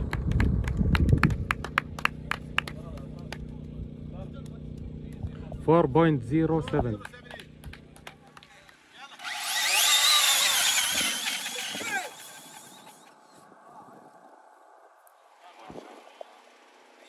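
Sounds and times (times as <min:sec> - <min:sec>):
rc car motor whine: 0:09.0 - 0:13.2.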